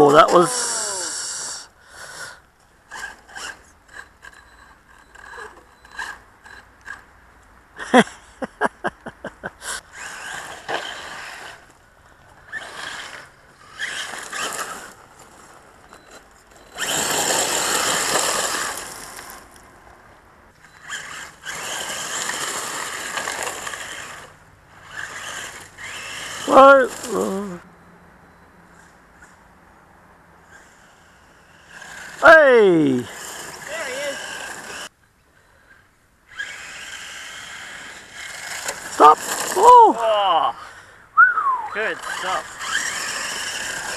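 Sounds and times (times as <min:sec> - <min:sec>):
rc car motor whine: 0:00.0 - 0:07.0, 0:09.7 - 0:19.7, 0:20.5 - 0:27.7, 0:30.4 - 0:34.9, 0:36.3 - 0:40.9, 0:41.7 - 0:43.9
tyres crunching on gravel: 0:09.8 - 0:27.3, 0:31.6 - 0:34.9, 0:36.4 - 0:40.1, 0:41.7 - 0:43.9.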